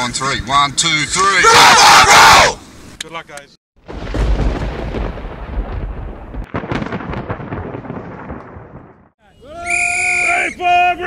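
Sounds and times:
thunder-like rumbling: 3.8s - 9.1s.

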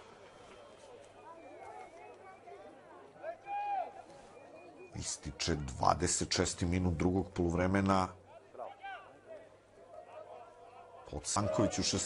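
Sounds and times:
distant shouts of players and onlookers: 0.0s - 5.0s, 8.2s - 12.0s.

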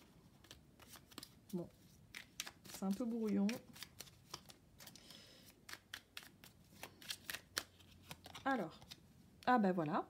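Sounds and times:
cards being shuffled: 0.0s - 9.1s.

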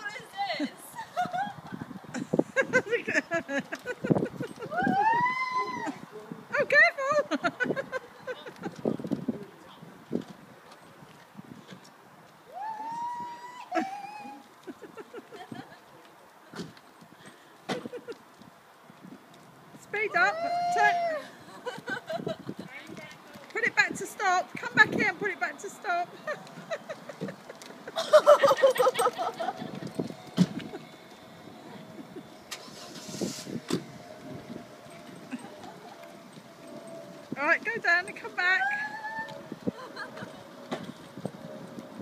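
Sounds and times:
bursts of laughter: 26.2s - 30.0s, 39.7s - 40.4s.

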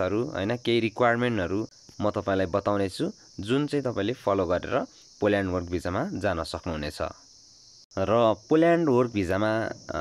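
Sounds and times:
man talking: 0.0s - 7.2s, 8.0s - 10.0s.

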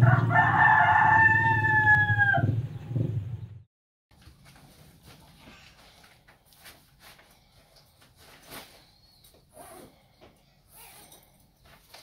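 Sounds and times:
rooster crowing: 0.0s - 2.6s.

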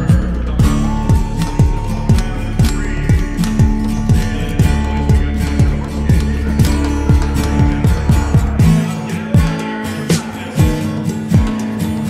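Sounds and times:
kick drum beat: 0.0s - 9.7s, 11.4s - 11.7s
guitar music: 0.0s - 12.0s.

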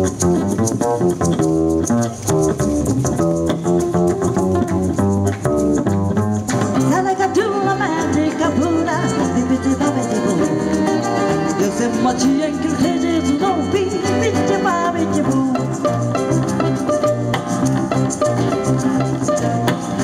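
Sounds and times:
shakers rattling: 0.0s - 7.0s
band playing latin song: 0.0s - 20.0s
woman singing: 6.9s - 16.0s.

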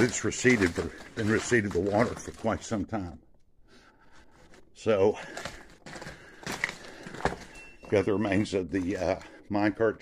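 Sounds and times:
footsteps crunching on rock: 0.0s - 2.6s.

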